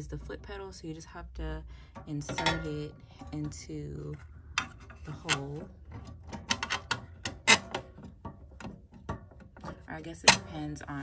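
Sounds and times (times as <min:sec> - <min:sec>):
metal rod clicking against pedal: 0:04.6 - 0:10.6.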